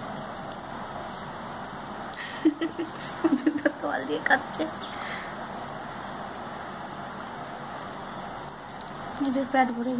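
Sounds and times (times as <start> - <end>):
steady background hiss: 0.0 - 9.9.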